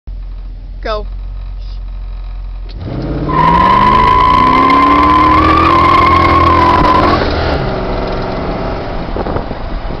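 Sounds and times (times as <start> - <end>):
car engine revving: 2.6 - 8.7
high tire squeal: 3.3 - 7.2.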